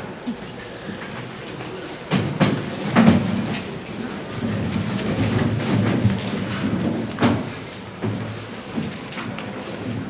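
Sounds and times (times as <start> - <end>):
people shuffling in a hall: 0.0 - 10.0.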